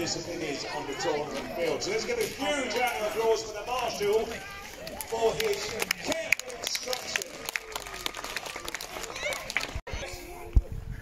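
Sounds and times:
voices: 0:00.0 - 0:11.0
spectators applauding: 0:04.8 - 0:09.8.

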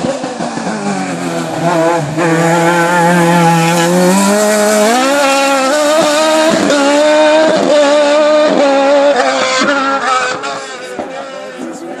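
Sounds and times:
race car engine revving: 0:00.0 - 0:12.0.

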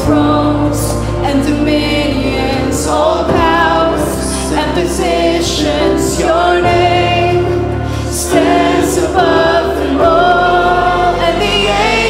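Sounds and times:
congregation singing: 0:00.0 - 0:12.0
keyboard and band accompaniment: 0:00.0 - 0:12.0.

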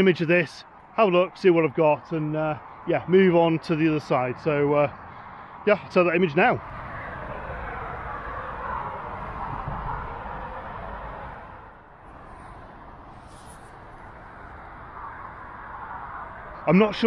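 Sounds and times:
traffic rushing over bridge: 0:00.0 - 0:17.0.

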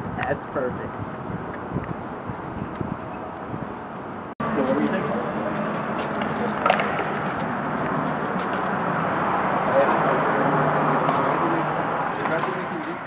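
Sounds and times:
indistinct voices talking: 0:00.0 - 0:13.0
traffic: 0:00.0 - 0:13.0.

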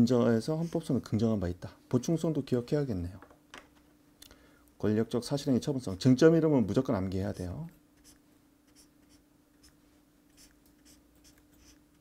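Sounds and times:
faint steady hum: 0:00.0 - 0:12.0
felt tip scratching on paper: 0:08.0 - 0:12.0.

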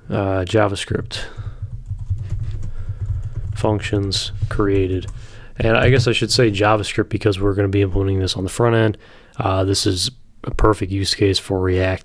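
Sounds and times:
steady low hum: 0:00.8 - 0:09.0.

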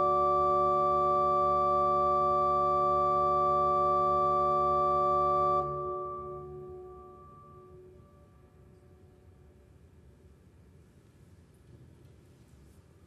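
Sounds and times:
organ chord with reverberation: 0:00.0 - 0:08.9.

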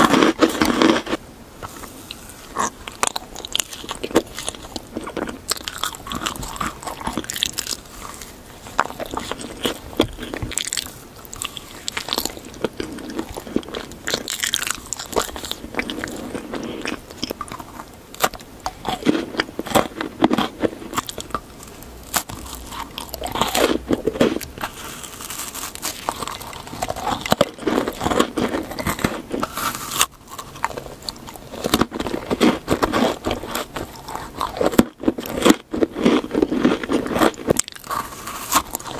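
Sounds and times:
crunching bites of candy: 0:00.0 - 0:38.9
soft chewing: 0:00.0 - 0:38.9.

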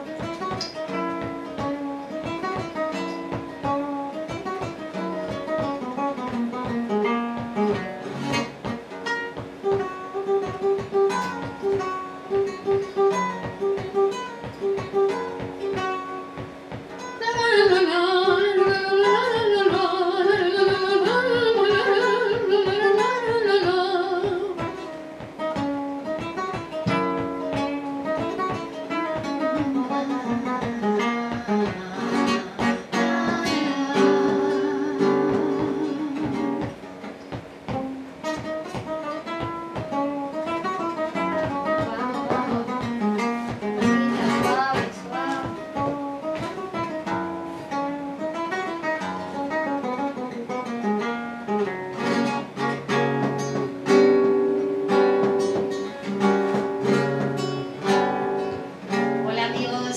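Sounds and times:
flamenco guitar playing: 0:00.0 - 0:59.9.

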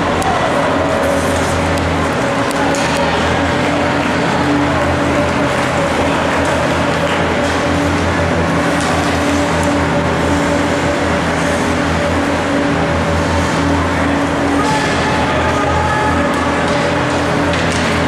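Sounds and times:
mechanical hum: 0:00.0 - 0:18.0
skates and sticks on ice: 0:00.0 - 0:18.0.

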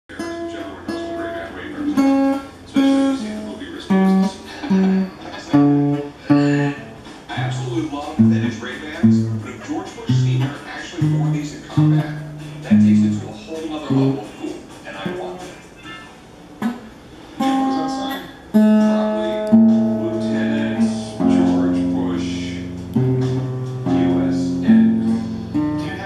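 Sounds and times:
fingerpicked acoustic guitar notes: 0:00.1 - 0:14.4, 0:15.9 - 0:26.0.

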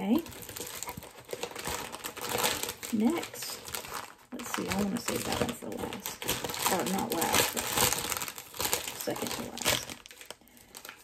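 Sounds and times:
plastic packaging crinkling: 0:00.0 - 0:11.0.

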